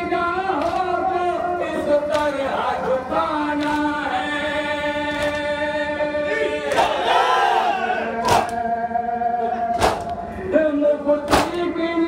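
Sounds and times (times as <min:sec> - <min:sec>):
men chanting a lament: 0:00.0 - 0:12.0
chest-beating slaps: 0:08.2 - 0:08.6, 0:09.8 - 0:10.2, 0:11.3 - 0:11.6.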